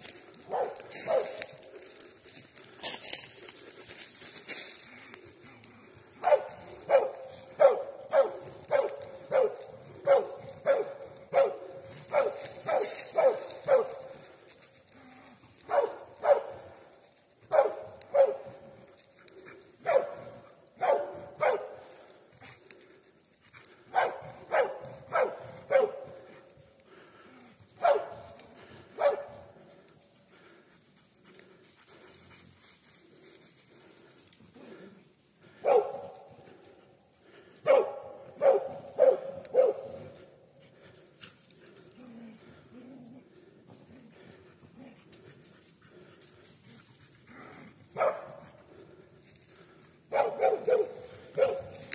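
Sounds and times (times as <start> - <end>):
dog barking: 0.4 - 1.6, 6.2 - 14.2, 15.6 - 16.8, 17.4 - 18.8, 19.8 - 22.0, 23.8 - 26.3, 27.8 - 29.5, 35.5 - 36.3, 37.6 - 40.2, 47.9 - 48.8, 50.1 - 51.9.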